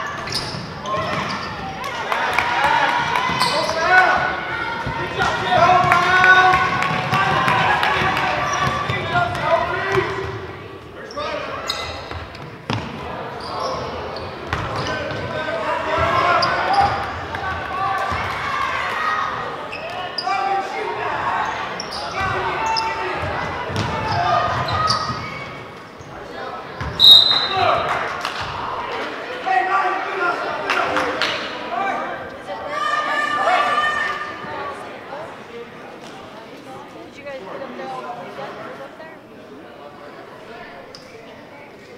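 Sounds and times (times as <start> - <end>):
referee's whistle: 27.0 - 27.7.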